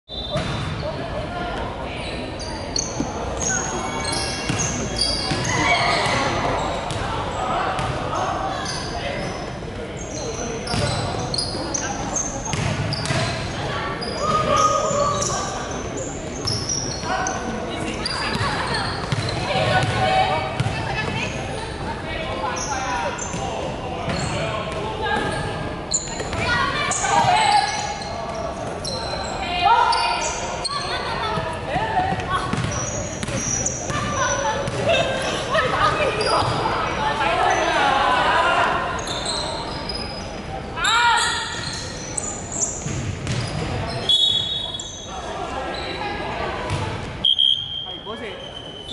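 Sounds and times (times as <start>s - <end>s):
sneaker squeaks: 0.1s - 21.8s, 22.4s - 37.9s, 38.8s - 48.9s
basketball bouncing on wooden court: 12.5s - 13.4s, 18.3s - 20.0s, 20.6s - 21.2s, 32.1s - 34.8s, 42.8s - 43.7s.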